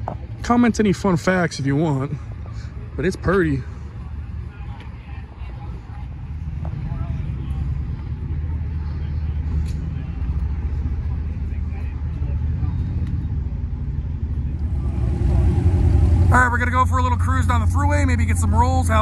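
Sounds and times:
car engines idling: 0:00.0 - 0:19.0
faint voices: 0:00.0 - 0:19.0.

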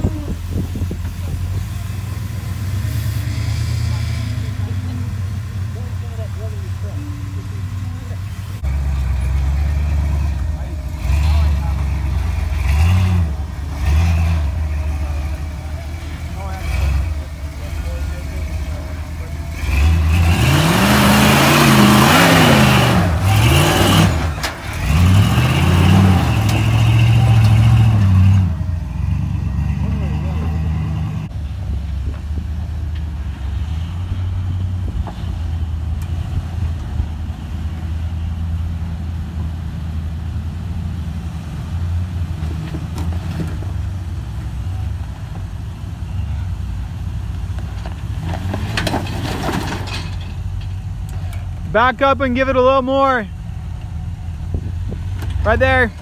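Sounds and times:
engine running at low revs: 0:00.0 - 0:49.1, 0:50.0 - 0:56.0
off-road engine revving: 0:00.0 - 0:56.0.

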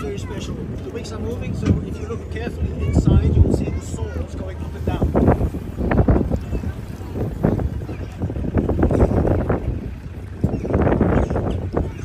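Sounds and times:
water splashing against boat hull: 0:00.0 - 0:12.0
wind buffeting microphone: 0:00.0 - 0:12.0.

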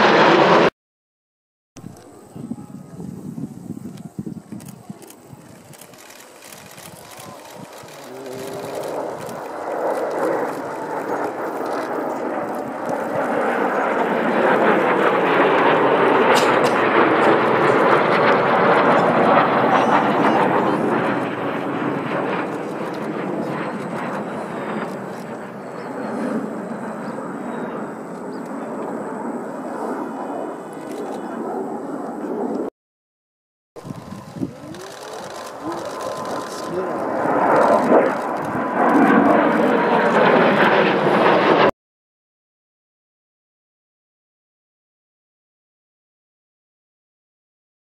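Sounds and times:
jets flying over: 0:00.0 - 0:00.7, 0:01.8 - 0:32.7, 0:33.8 - 0:41.7.

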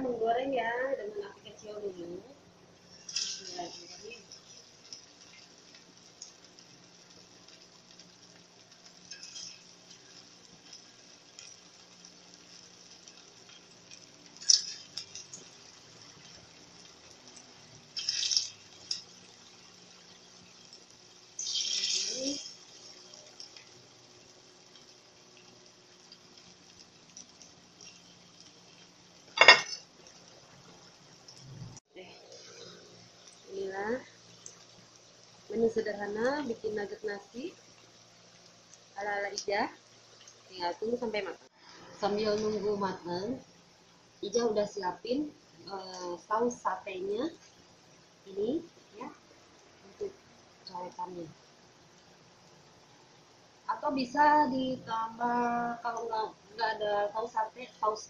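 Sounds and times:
faint steady hum: 0:00.0 - 0:58.0
oil sizzling in a wok: 0:00.0 - 0:58.0.

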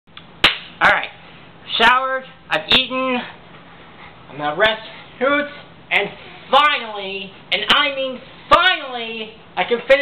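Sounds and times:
sharp smack: 0:00.4 - 0:00.8
man speaking: 0:00.8 - 0:03.4, 0:04.3 - 0:10.0.

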